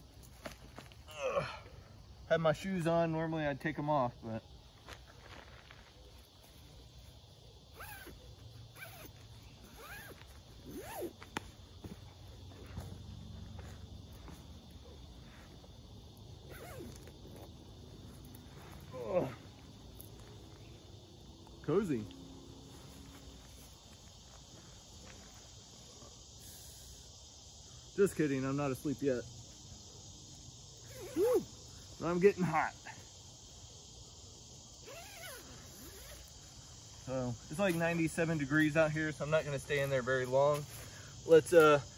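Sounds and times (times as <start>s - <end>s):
faint insect hum: 0.0s - 41.9s
sleeping bag rustling: 7.8s - 11.3s, 16.4s - 20.8s.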